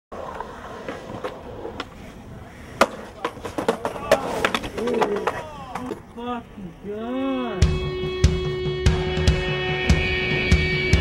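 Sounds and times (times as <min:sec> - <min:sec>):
skater slamming and board skidding: 0:00.1 - 0:06.1
skateboard clacking on concrete: 0:00.2 - 0:06.2.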